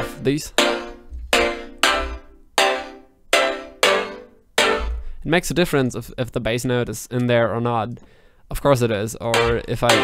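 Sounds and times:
plucky synth chord stabs: 0.0s - 5.2s, 9.4s - 10.0s.

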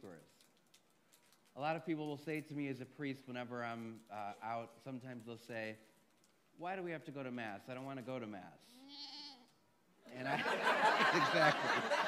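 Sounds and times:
people laughing: 10.1s - 12.0s.

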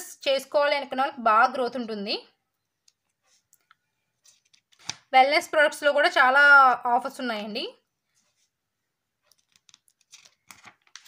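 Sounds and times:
woman's voice: 0.0s - 2.4s, 5.1s - 7.9s
catalogue pages clicking: 4.4s - 5.1s, 9.2s - 11.0s.

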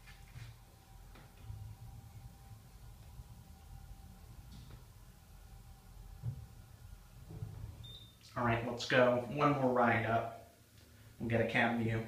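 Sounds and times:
elevator low rumble: 0.0s - 8.5s
faint hum tone: 0.0s - 12.0s.

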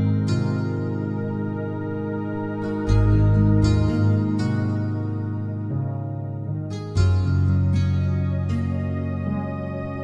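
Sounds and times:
soft slow instrumental music: 0.0s - 10.0s.

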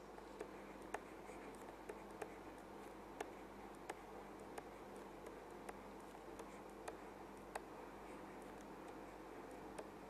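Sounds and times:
low steady hum: 0.0s - 10.0s
stylus tapping on tablet: 0.2s - 7.7s.

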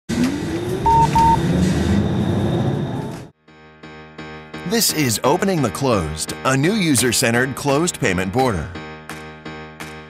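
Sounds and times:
short electronic beeps: 0.8s - 1.4s.

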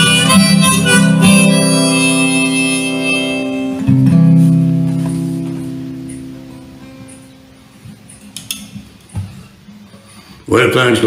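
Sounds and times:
acoustic guitar chord ringing: 0.0s - 8.4s.

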